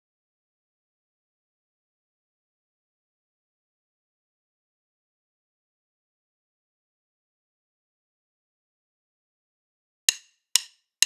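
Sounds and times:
drumstick clicks: 0:10.1 - 0:10.8.

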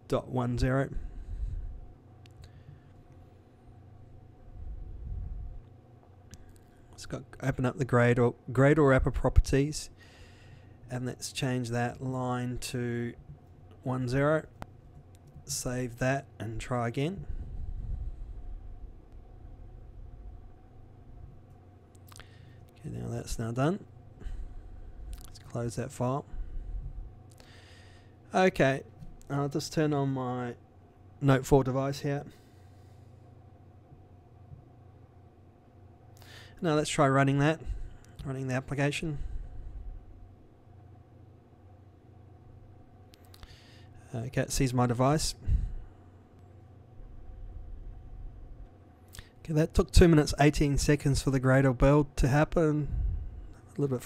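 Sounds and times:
faint hum: 0:00.0 - 0:54.0
low steady rumble: 0:00.0 - 0:54.0.

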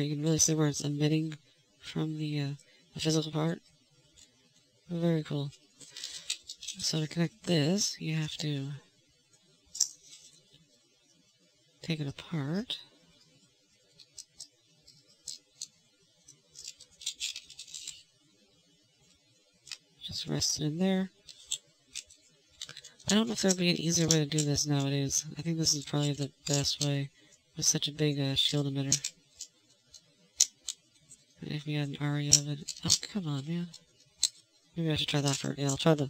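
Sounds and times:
plastic parts clicking and rubbing: 0:02.5 - 0:07.2, 0:09.7 - 0:10.7, 0:13.2 - 0:18.3, 0:19.0 - 0:36.0
plastic parts clicking: 0:28.9 - 0:31.2.

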